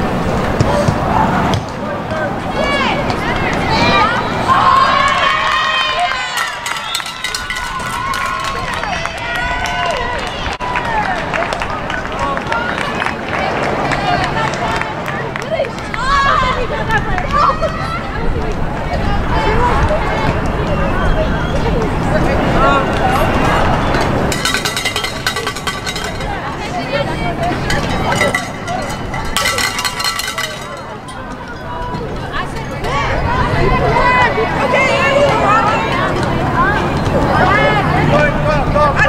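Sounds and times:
crowd chatter: 0:00.0 - 0:39.0
players and spectators shouting: 0:00.7 - 0:11.2, 0:27.6 - 0:39.0.

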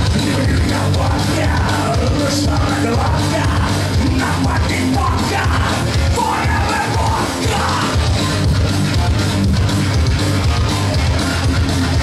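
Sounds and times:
punk rock band playing: 0:00.0 - 0:12.0
singer yelling: 0:00.2 - 0:08.1.

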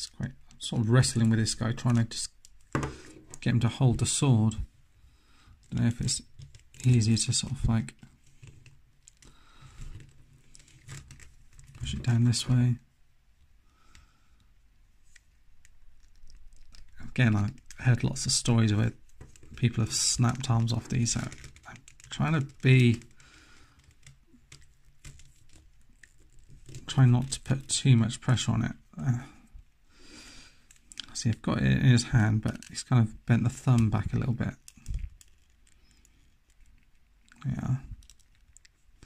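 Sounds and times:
light plastic rustling: 0:15.0 - 0:28.4
soft plastic clicks: 0:33.7 - 0:39.0.

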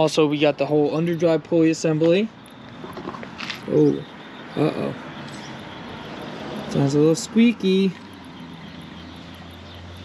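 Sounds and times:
alternator bearing whirring: 0:00.0 - 0:10.0.

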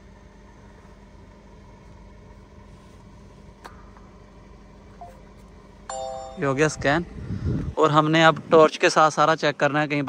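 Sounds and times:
mechanical hum: 0:00.0 - 0:10.0.

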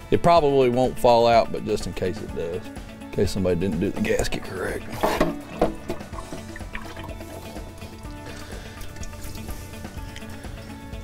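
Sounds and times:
background music: 0:00.0 - 0:11.0
fluid pouring in a stream: 0:04.8 - 0:10.3.

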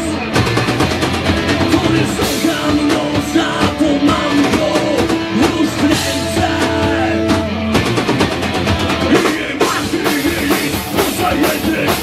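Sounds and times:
drum kit: 0:00.0 - 0:12.0
electric guitar: 0:00.0 - 0:12.0
person singing: 0:01.5 - 0:07.6, 0:09.1 - 0:12.0.

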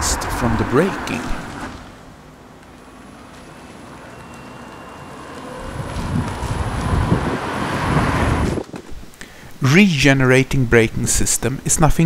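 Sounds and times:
electric car driving past: 0:00.0 - 0:08.6.

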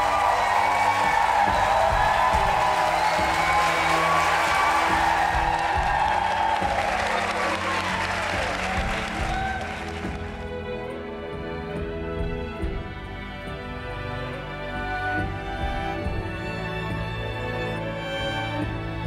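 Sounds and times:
people clapping: 0:00.0 - 0:10.8
background music: 0:00.0 - 0:19.0.

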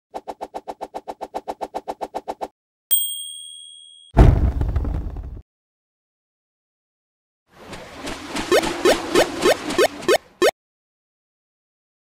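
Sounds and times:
bright bell ding: 0:02.9 - 0:04.2.

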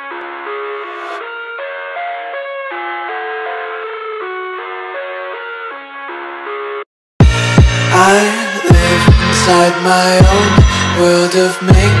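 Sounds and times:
instrumental chord music: 0:00.0 - 0:06.6, 0:07.2 - 0:12.0.

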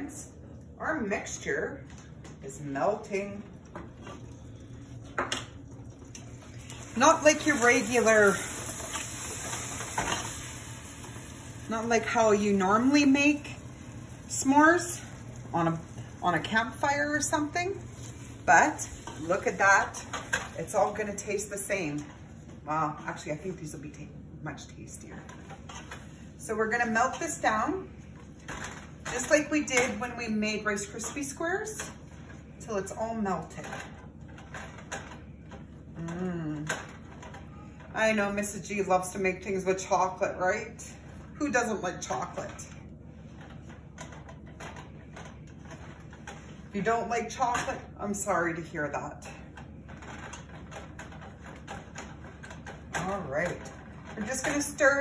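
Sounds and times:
person humming: 0:36.0 - 0:36.7.

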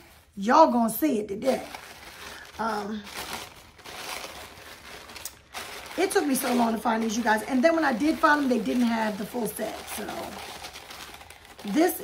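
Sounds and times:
packaging rustling: 0:01.4 - 0:12.0.

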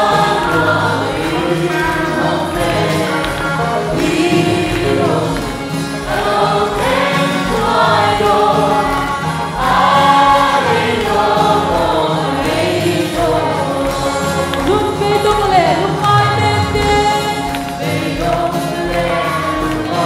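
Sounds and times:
congregation singing gospel song: 0:00.0 - 0:20.0.

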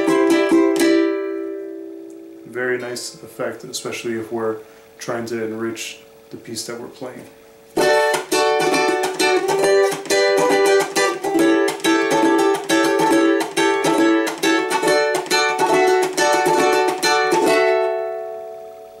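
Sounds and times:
cuatro strumming: 0:00.0 - 0:19.0.

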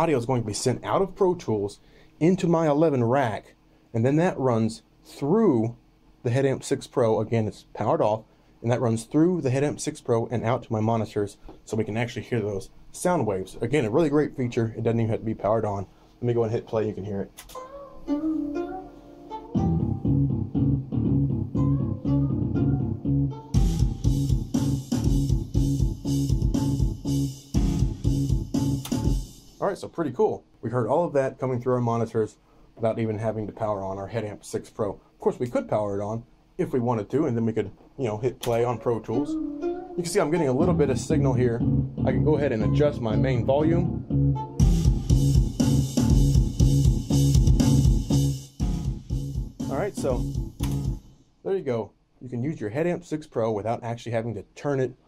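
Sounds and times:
sustained synth notes: 0:18.1 - 0:27.0, 0:38.7 - 0:47.0
low repeating bass line: 0:19.6 - 0:29.2, 0:40.5 - 0:51.0
steady beat with sharp hits: 0:19.6 - 0:29.7, 0:39.2 - 0:51.3.

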